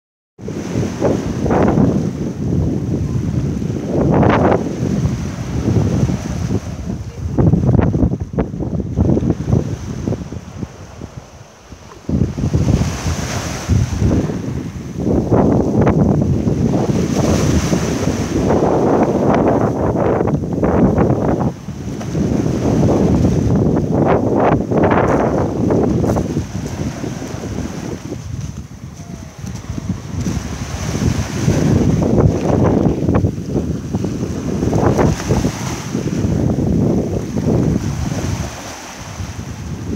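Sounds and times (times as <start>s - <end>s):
wind buffeting microphone: 0.4s - 39.9s
sea waves on pebble beach: 0.5s - 8.1s, 9.0s - 39.9s.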